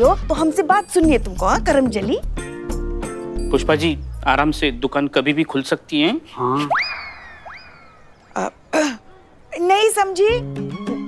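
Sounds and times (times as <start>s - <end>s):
cartoon whistle swoop: 6.6s - 8.2s.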